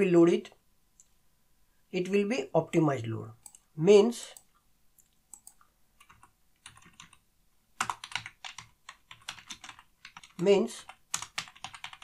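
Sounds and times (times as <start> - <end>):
keyboard typing: 3.4 - 3.6, 4.4 - 7.2, 7.8 - 12.0.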